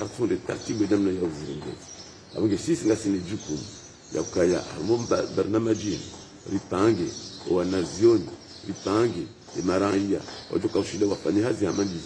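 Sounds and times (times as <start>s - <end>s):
man speaking in a low voice: 0.0s - 12.0s.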